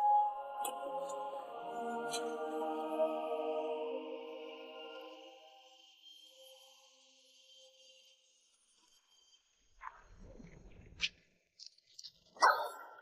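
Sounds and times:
dog barking: 0:12.4 - 0:13.0.

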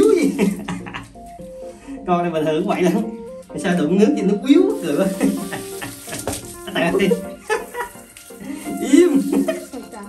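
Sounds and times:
shower water spraying on dog: 0:04.7 - 0:10.0.

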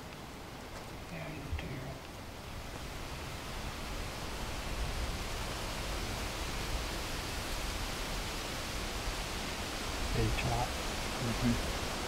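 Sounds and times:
wind hiss: 0:00.0 - 0:12.0
wind rumble on microphone: 0:00.3 - 0:12.0.

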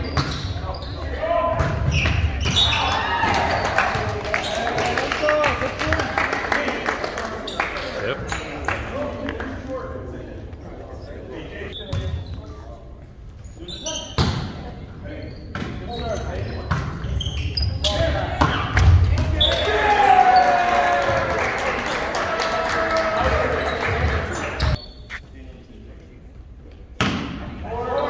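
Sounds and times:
people shouting and cheering: 0:02.6 - 0:06.0, 0:19.3 - 0:24.7.

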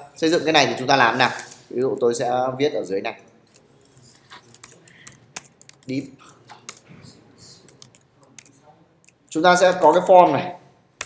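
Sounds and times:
computer keyboard typing: 0:03.5 - 0:10.0.

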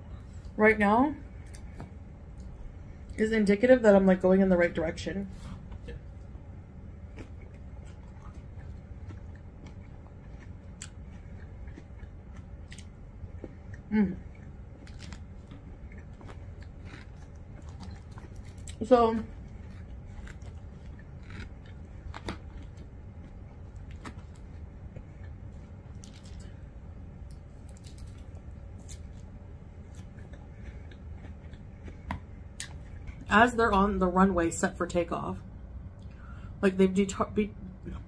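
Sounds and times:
low hum: 0:00.0 - 0:38.0.

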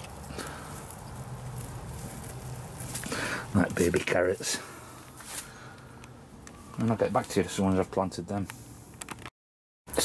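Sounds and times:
rustling foliage: 0:00.0 - 0:07.9.

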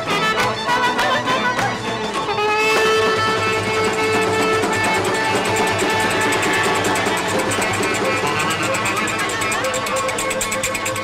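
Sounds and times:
folk dance tune with plucked strings: 0:00.0 - 0:11.0.

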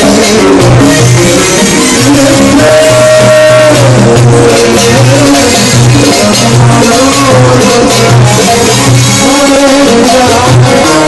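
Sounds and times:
oud and keyboard music: 0:00.0 - 0:11.0
percussion rhythm: 0:00.0 - 0:11.0.

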